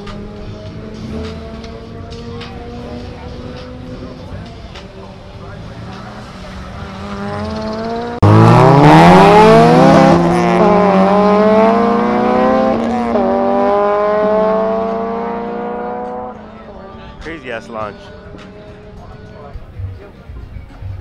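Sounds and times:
car engine accelerating hard: 0.0s - 17.2s.

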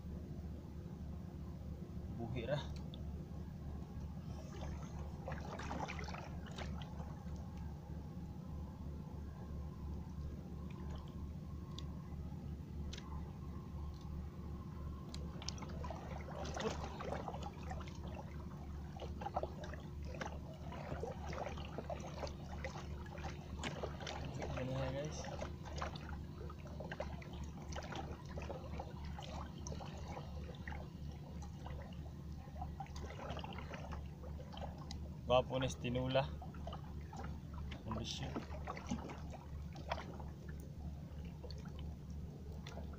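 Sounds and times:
motor hum: 0.0s - 42.9s
water splashing and trickling: 3.9s - 8.9s, 9.5s - 42.9s.

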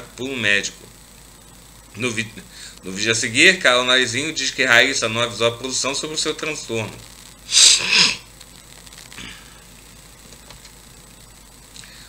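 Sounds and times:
man sneezing: 7.5s - 8.2s.

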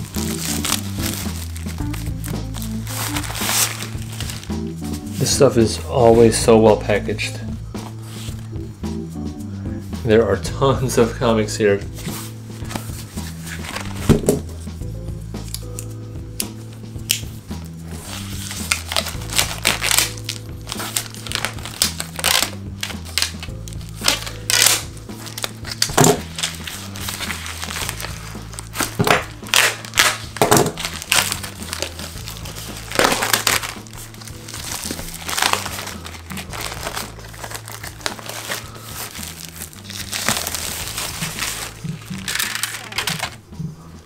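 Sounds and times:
shrink wrap crinkling and tearing: 0.0s - 5.3s, 12.6s - 14.2s, 17.9s - 43.4s
background music: 0.0s - 44.0s.

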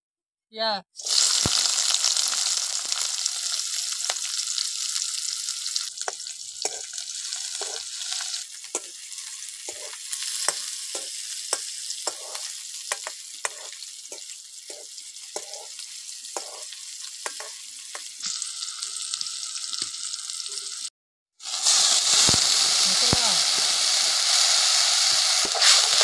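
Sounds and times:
onions sizzling in hot oil: 1.0s - 26.0s
steel ladle scraping pan: 6.6s - 11.1s, 12.1s - 12.5s.

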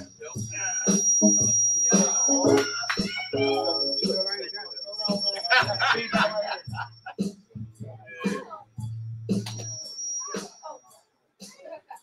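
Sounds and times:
high-pitched whine: 0.6s - 5.8s
voices singing or chanting: 2.0s - 4.5s.

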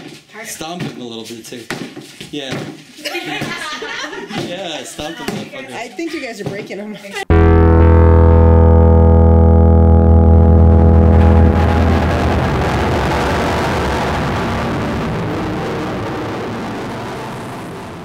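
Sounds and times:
low musical drone: 7.3s - 14.4s
noisy wash: 9.4s - 18.0s.

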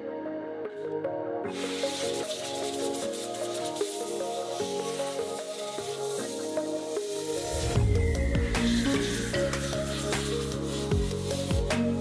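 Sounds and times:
background music: 0.0s - 12.0s
compressed air hiss: 1.5s - 12.0s.

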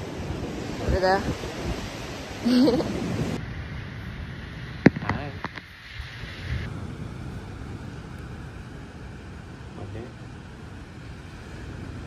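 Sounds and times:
surf and wind: 0.0s - 12.0s
person laughing: 2.4s - 3.0s.

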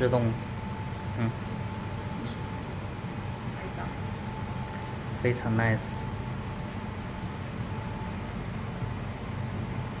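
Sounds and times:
low indoor hum: 0.0s - 10.0s.

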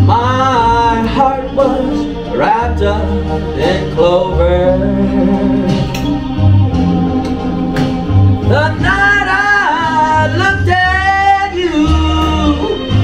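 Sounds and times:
man singing ballad into microphone: 0.0s - 6.0s, 8.5s - 13.0s
backing track with bass line: 0.0s - 13.0s.

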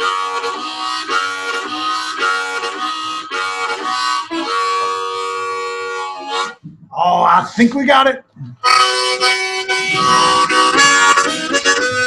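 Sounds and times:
harmonica playing chords: 0.0s - 6.6s, 8.6s - 12.0s.

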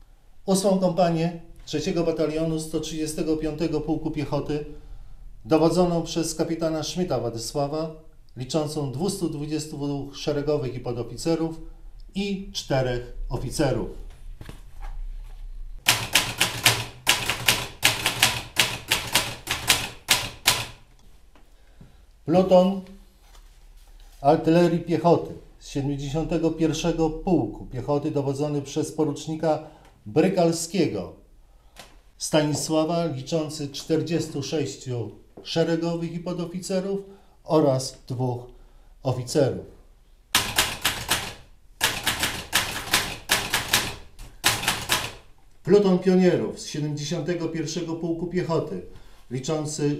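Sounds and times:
manual typewriter keystrokes: 15.8s - 20.8s, 40.3s - 45.3s.

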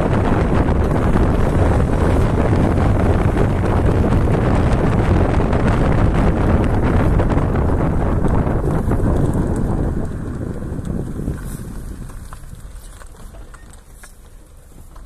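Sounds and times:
car road rumble: 0.0s - 15.0s
wind buffeting microphone: 0.0s - 15.0s.

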